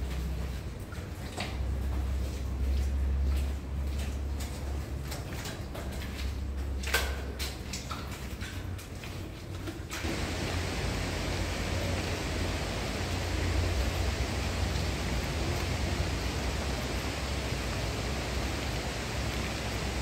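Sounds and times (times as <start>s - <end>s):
river water rushing: 10.0s - 20.0s.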